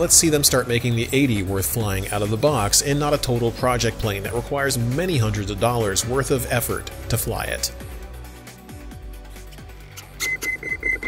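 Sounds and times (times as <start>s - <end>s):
soft background music: 0.0s - 11.0s
short high electronic beeps: 10.2s - 11.0s.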